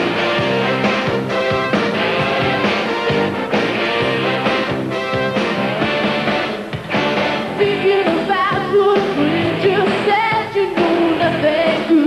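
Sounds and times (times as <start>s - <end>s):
steady drum beat: 0.0s - 11.2s
live pop-rock band playing: 0.0s - 12.0s
woman singing: 7.6s - 12.0s.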